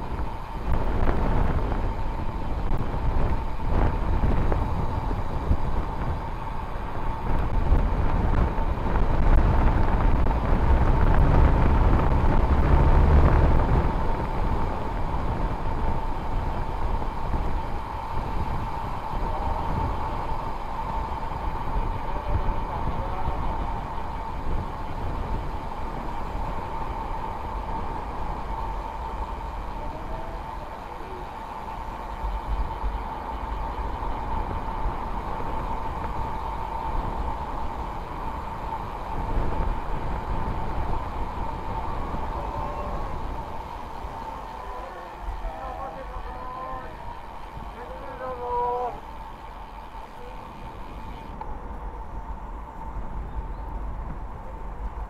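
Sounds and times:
bicycle tyre rumble: 0.0 - 55.0
thin steady whine: 0.0 - 55.0
wind rushing over microphone: 0.0 - 55.0.

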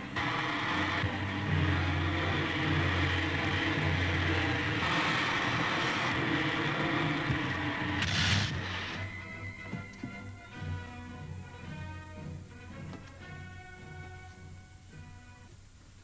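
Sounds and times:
rocket engine drone: 0.0 - 9.6.

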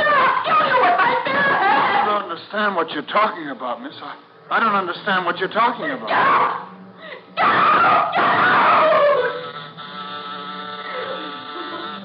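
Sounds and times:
loud scream falling in pitch: 7.4 - 9.5
electric buzzer tone: 9.4 - 12.0.

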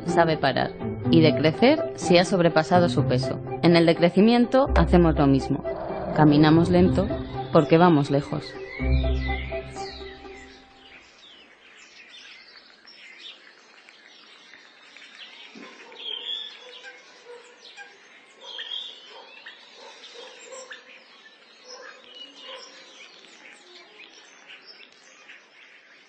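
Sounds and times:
birds chirping: 0.0 - 26.0.

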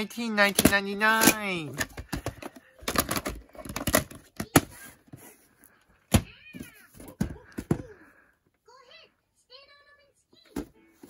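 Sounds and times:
plastic case clicks and knocks: 0.5 - 4.7.

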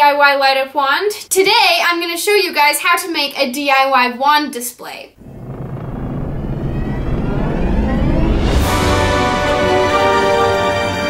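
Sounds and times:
low rumbling whoosh riser: 5.2 - 10.0.

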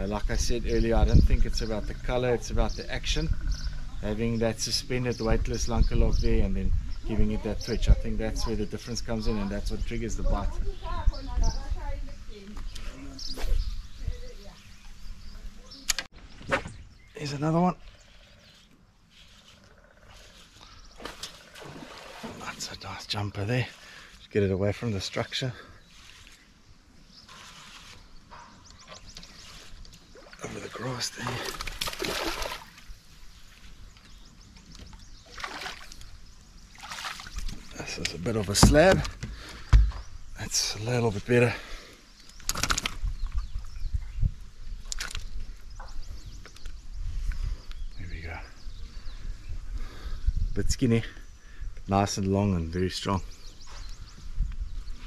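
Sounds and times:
fish splashing: 21.0 - 22.4, 31.2 - 32.8, 35.2 - 36.0, 36.7 - 37.5.

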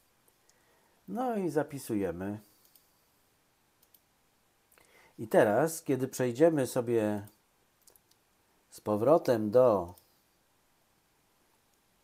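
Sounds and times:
computer mouse clicks: 2.6 - 2.9, 3.8 - 4.1, 7.2 - 8.2.

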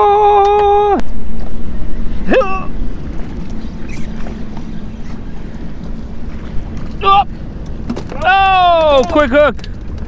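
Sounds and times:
man exclaiming: 0.0 - 1.0, 2.3 - 2.7, 7.0 - 7.3, 8.1 - 9.5
wind rushing over microphone: 0.0 - 10.0.

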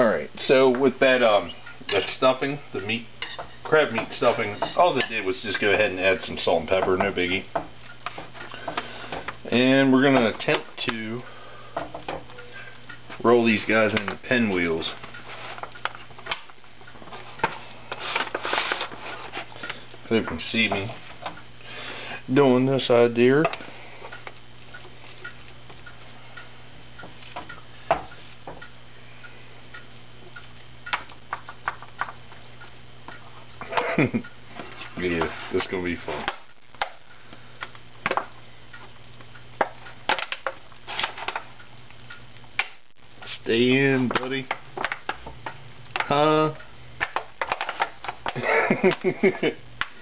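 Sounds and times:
steady low hum: 0.0 - 50.0
aluminium foil pan crinkling: 11.8 - 21.4, 30.5 - 41.6, 44.0 - 46.2, 47.0 - 49.0.

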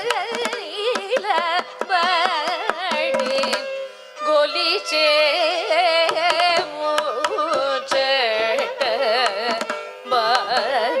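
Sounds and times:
ornamented classical singing: 0.0 - 3.6, 4.2 - 11.0
mridangam drum strokes: 0.0 - 11.0
violin: 0.0 - 11.0
tanpura drone: 0.2 - 11.0.

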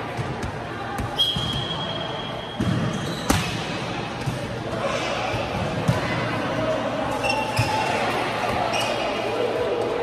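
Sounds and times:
voices in a hall: 0.0 - 10.0
whistle blown: 1.2 - 2.6.

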